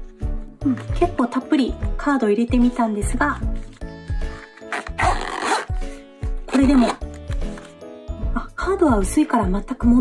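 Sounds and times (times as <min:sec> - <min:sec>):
background music: 0:00.0 - 0:10.0
zipper being pulled closed: 0:03.6 - 0:07.8.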